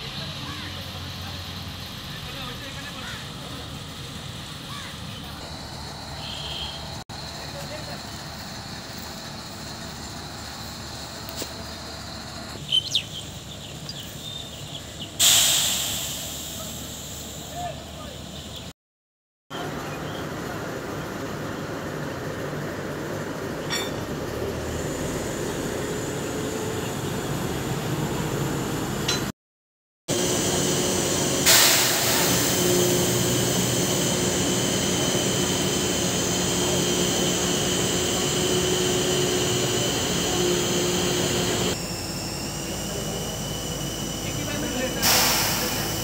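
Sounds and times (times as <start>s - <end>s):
crane engine droning: 0.0s - 15.2s, 19.6s - 29.3s, 30.1s - 46.0s
steady high whine: 30.1s - 46.0s.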